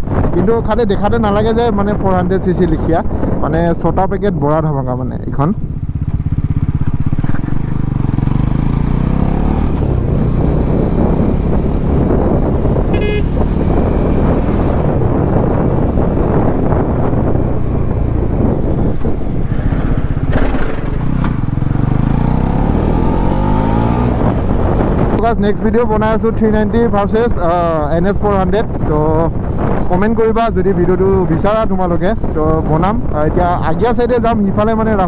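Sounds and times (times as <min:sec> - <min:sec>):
wind rushing over microphone: 0:00.0 - 0:35.0
motorcycle engine accelerating: 0:05.3 - 0:26.2
vehicle horn toot: 0:12.9 - 0:13.4.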